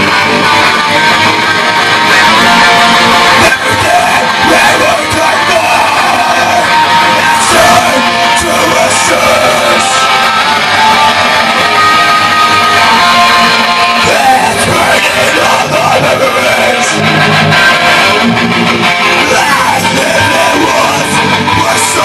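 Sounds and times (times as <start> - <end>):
electric guitars playing: 0.0 - 22.0
person yelling vocals: 3.4 - 10.0, 14.0 - 17.0, 19.2 - 22.0.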